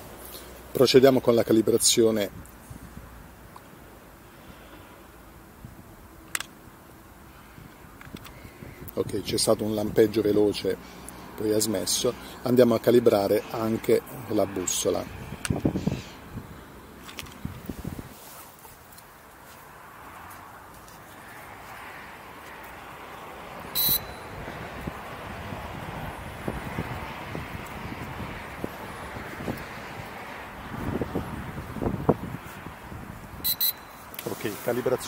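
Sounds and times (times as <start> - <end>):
wind on microphone: 15.1 - 18.2, 24.2 - 33.5
rustling: 17.0 - 21.8
short high electronic beep: 23.8 - 24.2, 33.4 - 34.0.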